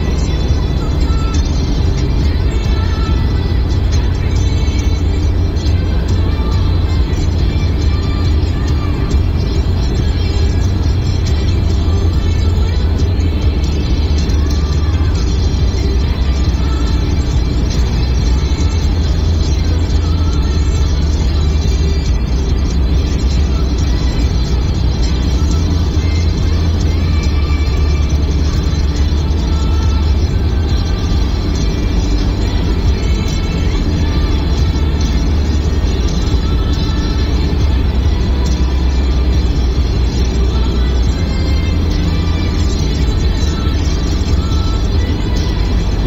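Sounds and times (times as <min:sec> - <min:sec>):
car road and engine rumble: 0:00.0 - 0:46.0
music playing: 0:00.0 - 0:46.0.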